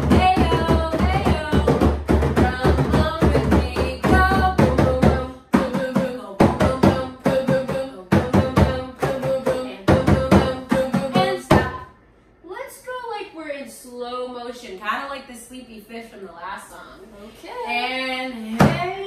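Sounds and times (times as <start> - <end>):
hand drums struck with palms: 0.0 - 11.8.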